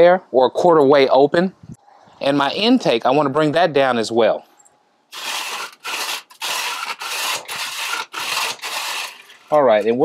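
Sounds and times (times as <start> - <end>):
metal vent scraping: 5.2 - 9.9.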